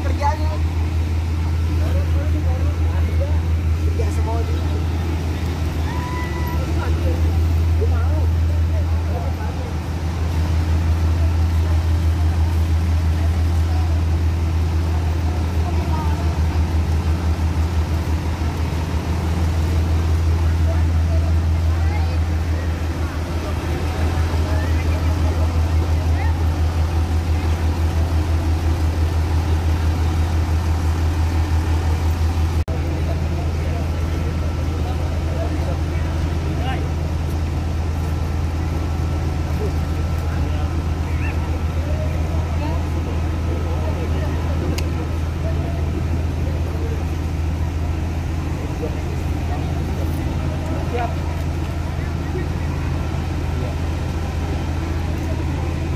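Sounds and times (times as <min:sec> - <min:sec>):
fire truck engine droning: 0:00.0 - 0:55.9.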